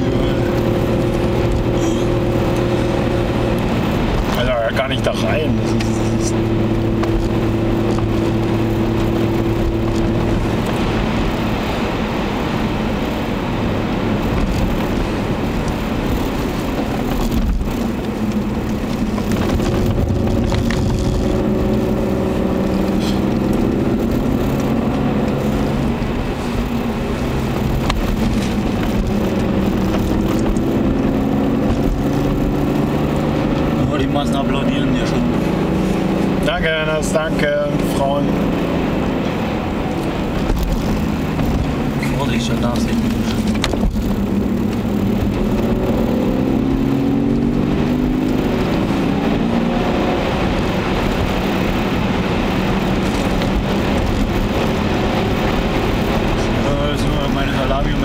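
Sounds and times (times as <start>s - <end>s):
car engine accelerating: 0.0s - 58.0s
tyre and road noise: 0.0s - 58.0s.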